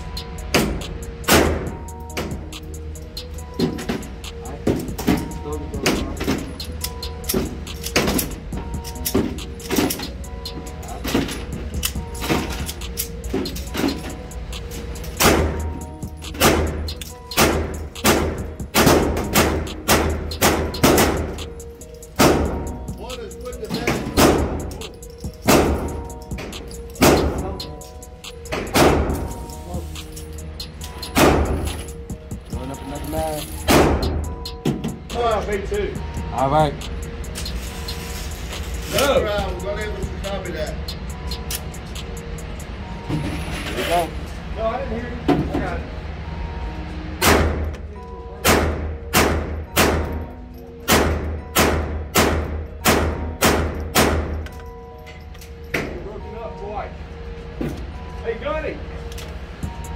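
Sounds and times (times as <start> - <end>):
music playing: 0.0 - 59.9.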